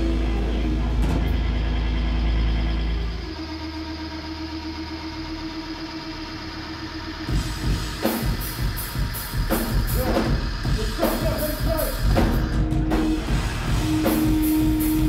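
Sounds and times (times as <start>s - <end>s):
hardcore band playing live: 0.0s - 2.4s, 7.2s - 15.0s
distorted guitar chord: 0.0s - 4.2s, 7.3s - 15.0s
drums with fast hits: 7.2s - 15.0s.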